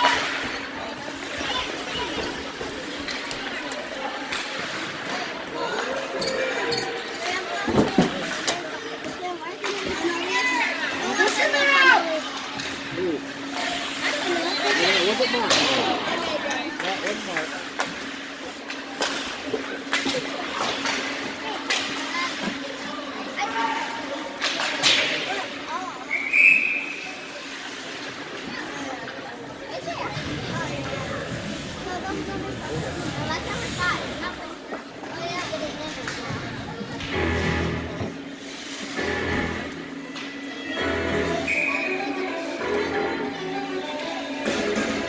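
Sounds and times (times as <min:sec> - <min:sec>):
spectators chattering: 0:00.0 - 0:45.0
puck and sticks clacking: 0:15.5 - 0:15.8, 0:16.5 - 0:22.6, 0:24.4 - 0:25.2.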